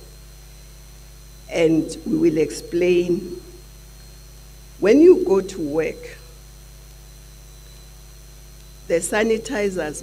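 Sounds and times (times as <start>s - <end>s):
electrical mains hum: 0.0s - 10.0s
faint high steady tones: 0.0s - 10.0s
woman's voice: 1.5s - 3.4s, 4.8s - 6.2s, 8.9s - 10.0s.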